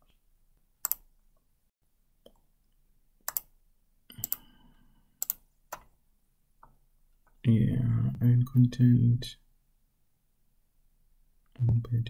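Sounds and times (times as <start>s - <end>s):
computer mouse clicks: 0.8s - 1.1s, 3.2s - 3.5s, 4.1s - 4.5s, 5.2s - 5.9s.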